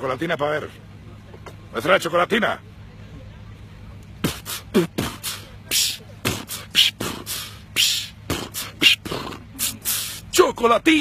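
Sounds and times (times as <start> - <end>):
man beatboxing: 4.2 - 10.4.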